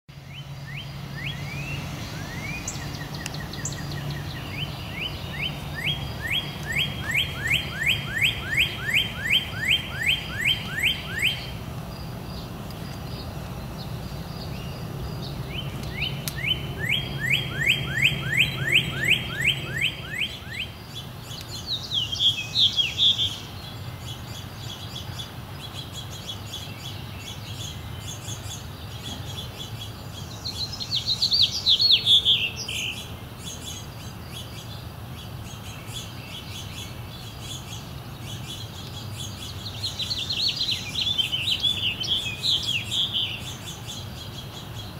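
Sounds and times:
songbirds singing: 0.1 - 44.9.

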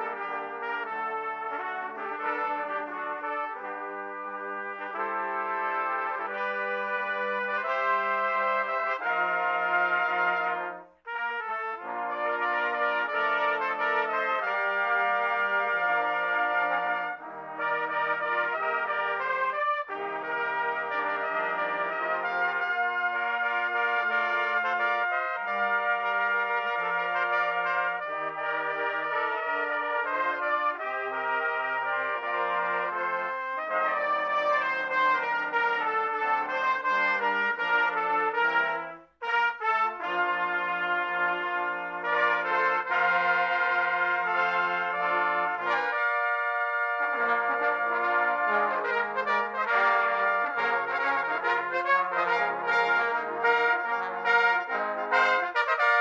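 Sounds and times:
trumpet ensemble playing chords: 0.0 - 56.0.

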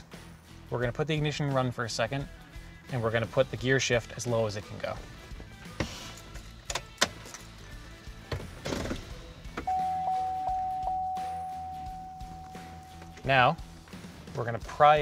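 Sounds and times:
background music: 0.0 - 15.0
steady high tone: 9.7 - 13.6.

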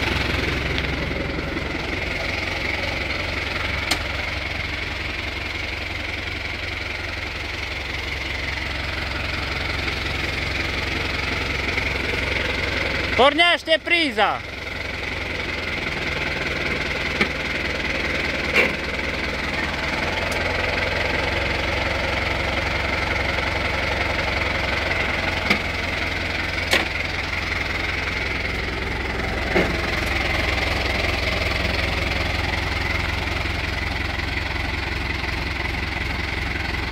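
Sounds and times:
diesel tractor engine idling: 0.0 - 36.9.

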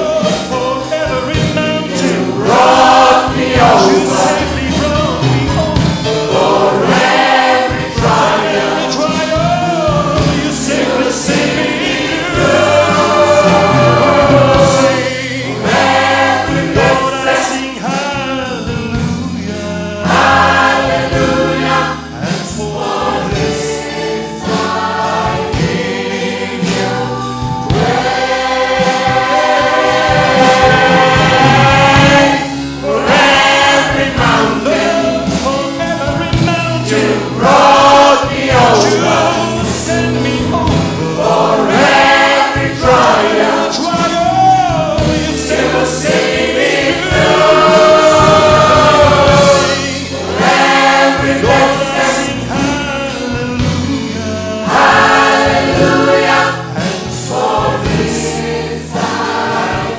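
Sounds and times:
man leading singing: 0.0 - 26.7, 27.7 - 58.4
band accompaniment: 0.0 - 59.9
gospel choir singing: 0.0 - 59.9.

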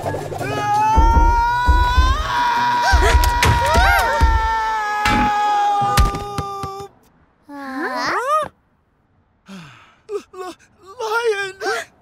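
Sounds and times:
cartoon character groaning and moaning: 7.4 - 8.5.

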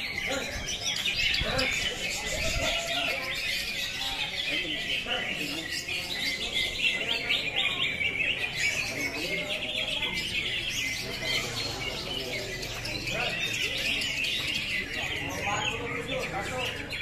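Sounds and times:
many birds singing: 0.0 - 17.0
murmur of voices: 0.0 - 17.0.

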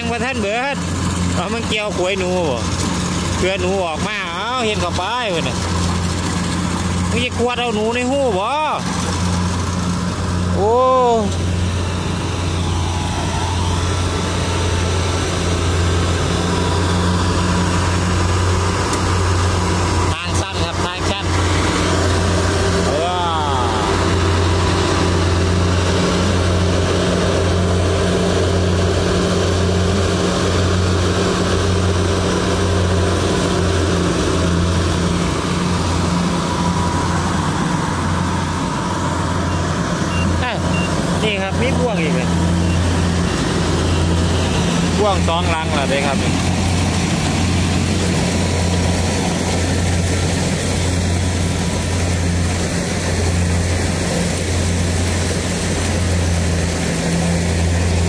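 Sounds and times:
combine harvester engine humming: 0.0 - 58.0.

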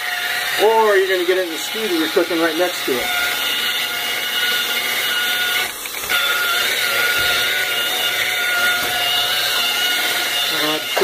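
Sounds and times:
electric polisher whining: 0.0 - 11.0.

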